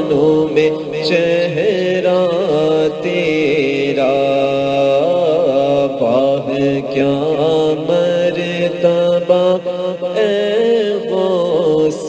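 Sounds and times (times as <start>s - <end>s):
person singing wordless notes: 0.0s - 12.0s.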